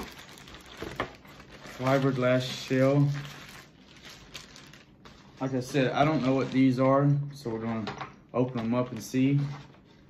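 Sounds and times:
plastic wrapping crinkling: 0:00.0 - 0:07.1.

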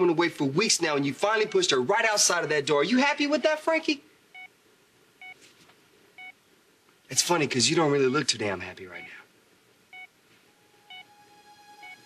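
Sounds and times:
patient monitor beeps: 0:01.3 - 0:01.8, 0:04.3 - 0:04.5, 0:05.2 - 0:05.4, 0:06.2 - 0:06.4, 0:08.9 - 0:09.2, 0:09.9 - 0:12.0.

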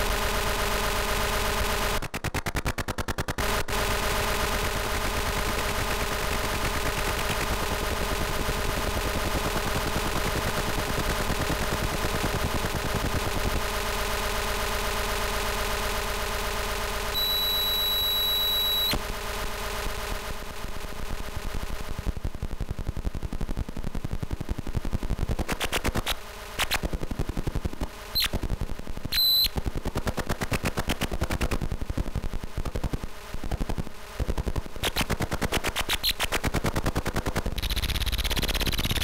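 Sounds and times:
low electronic buzz: 0:00.0 - 0:02.1, 0:03.3 - 0:29.9, 0:37.2 - 0:39.0
fast stuttering clicks and pulses: 0:00.1 - 0:15.0, 0:23.2 - 0:39.0.

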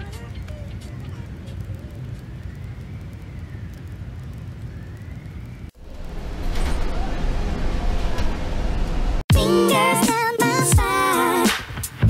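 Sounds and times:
low city rumble: 0:00.0 - 0:09.3.

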